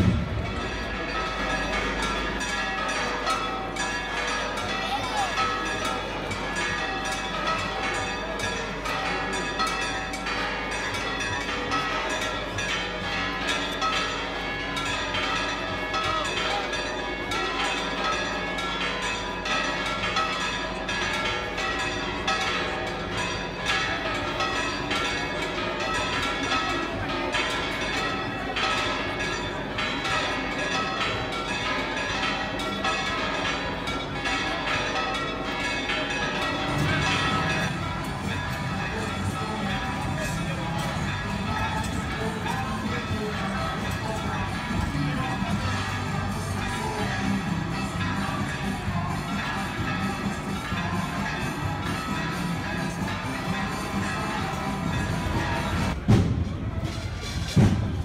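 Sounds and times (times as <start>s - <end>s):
church bells pealing: 0.0s - 57.8s.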